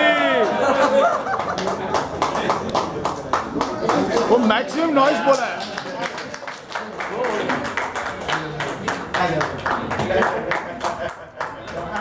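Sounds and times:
people clapping in rhythm: 0.4s - 12.0s.

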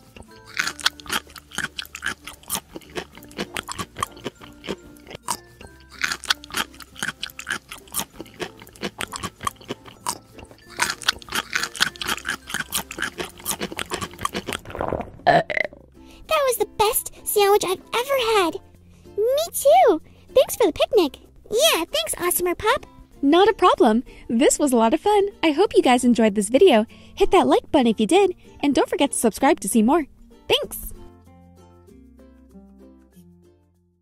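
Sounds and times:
cheerful background music: 0.0s - 14.6s, 15.3s - 34.0s
cartoon crunching and munching: 0.0s - 15.8s.

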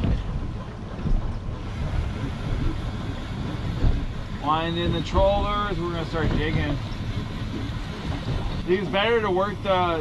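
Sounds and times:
outboard motor humming: 0.0s - 10.0s
water rushing past hull: 0.0s - 10.0s
wind buffeting microphone: 0.0s - 10.0s.

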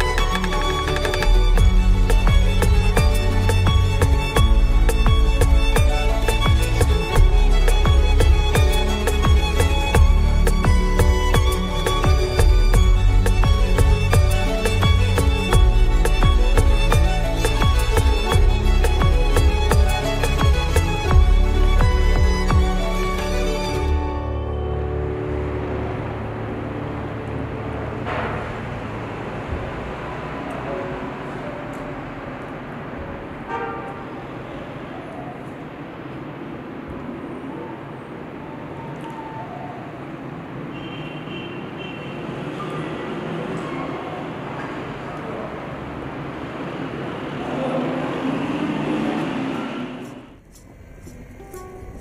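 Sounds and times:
low rumble of car traffic: 0.0s - 52.0s.

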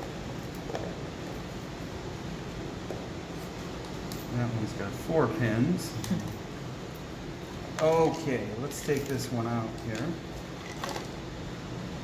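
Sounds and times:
room hiss: 0.0s - 12.0s.

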